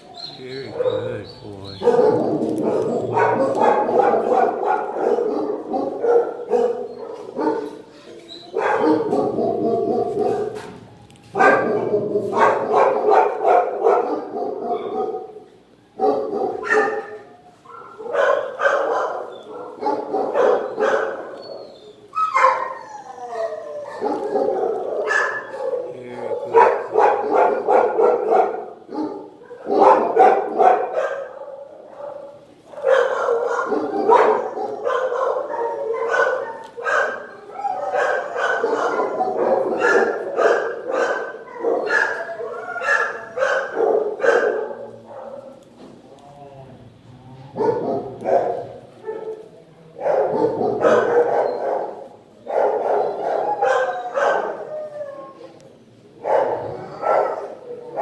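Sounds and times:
dogs barking: 0:00.0 - 0:45.9, 0:47.5 - 0:58.0.

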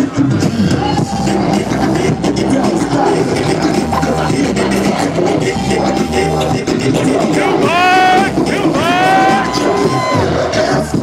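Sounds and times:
dj music beat: 0:00.2 - 0:10.1.

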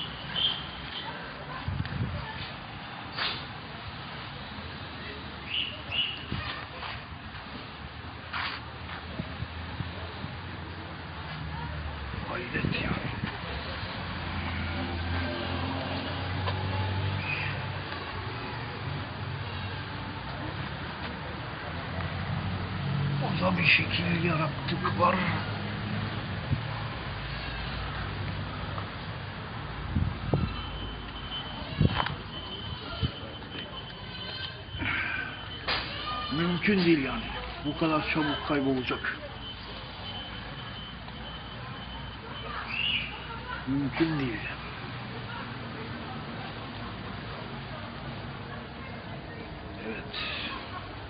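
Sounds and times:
man speaking: 0:23.2 - 0:25.4, 0:36.3 - 0:39.2, 0:43.7 - 0:44.6.

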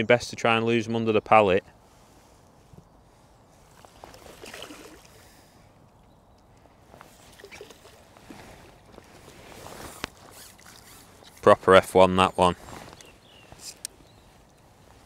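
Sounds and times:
water splashing: 0:03.8 - 0:05.2, 0:07.2 - 0:08.9.

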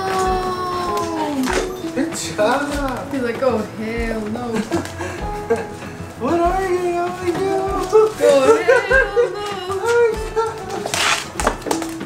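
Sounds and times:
dog howling: 0:00.0 - 0:01.9.

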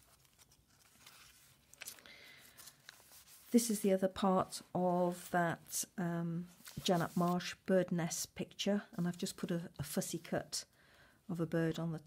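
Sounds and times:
paper pages turning: 0:00.0 - 0:03.8, 0:06.6 - 0:07.5.

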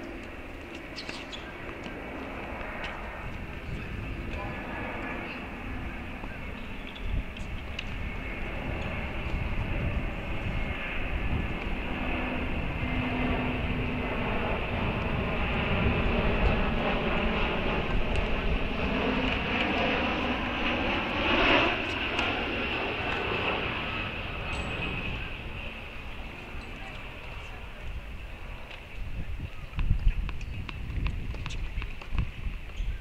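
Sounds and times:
aircraft engine passing overhead: 0:00.0 - 0:33.0.

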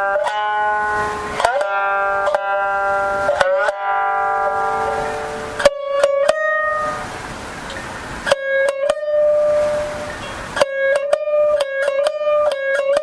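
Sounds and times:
shamisen plucked notes: 0:00.0 - 0:13.0.

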